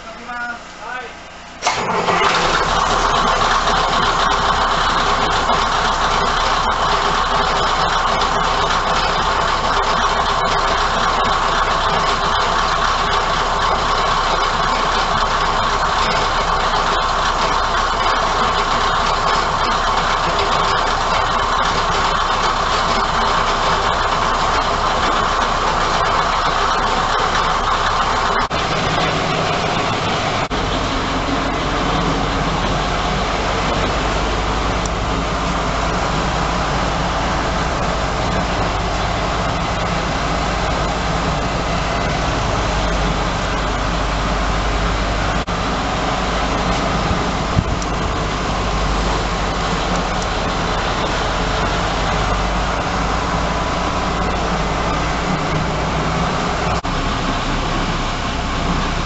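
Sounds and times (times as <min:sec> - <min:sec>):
diesel engine idling: 0:00.0 - 0:59.0.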